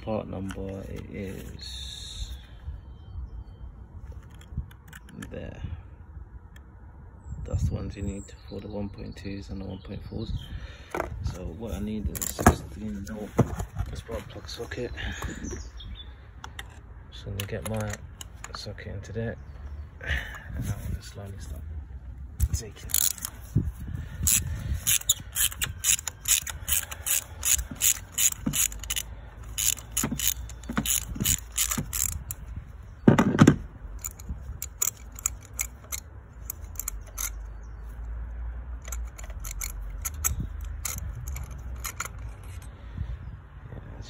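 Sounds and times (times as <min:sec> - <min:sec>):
ratchet wrench clicking: 0:22.4 - 0:23.4, 0:24.2 - 0:32.4, 0:33.9 - 0:37.5, 0:38.8 - 0:42.7.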